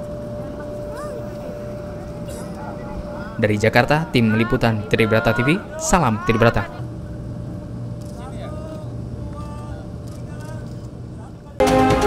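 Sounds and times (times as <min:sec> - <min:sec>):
faint voices: 0:00.0 - 0:07.3
loud theme music: 0:11.6 - 0:12.0.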